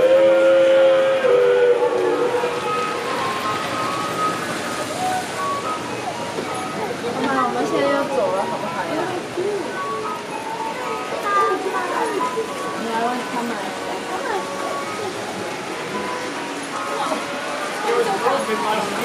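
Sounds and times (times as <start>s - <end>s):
indistinct chatter of people: 0.0s - 19.0s.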